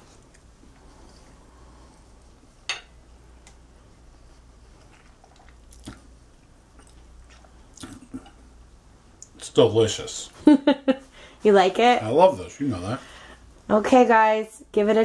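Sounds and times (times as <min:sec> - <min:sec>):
man chewing quietly: 0:00.0 - 0:09.4.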